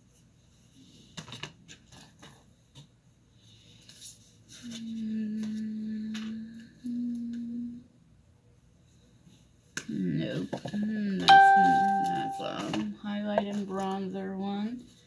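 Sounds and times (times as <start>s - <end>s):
sharp ringing chime: 11.3s - 12.6s.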